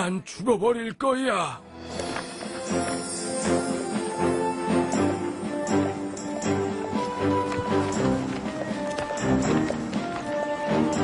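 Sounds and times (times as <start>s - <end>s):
background score music: 1.1s - 11.0s
hooves clip-clopping: 2.0s - 11.0s.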